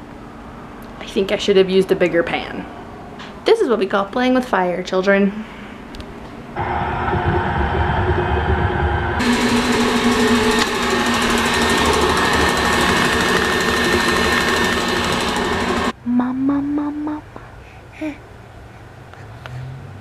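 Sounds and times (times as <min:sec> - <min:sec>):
stand mixer motor whining: 0:06.6 - 0:16.0.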